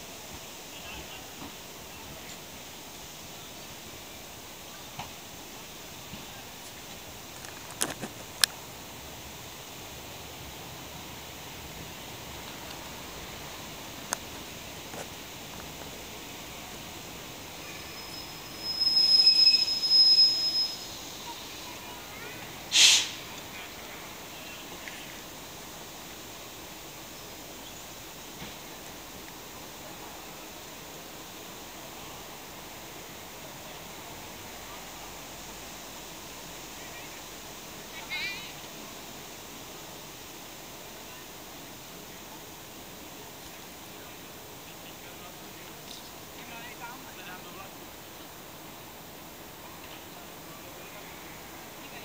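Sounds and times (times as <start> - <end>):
diesel railcar rumble: 0.0 - 52.0
steady hiss: 0.0 - 52.0
short high squeal: 17.6 - 21.4, 22.7 - 23.2.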